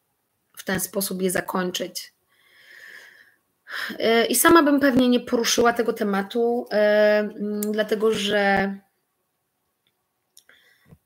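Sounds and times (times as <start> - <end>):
woman breathing in: 2.3 - 3.4, 10.5 - 11.0.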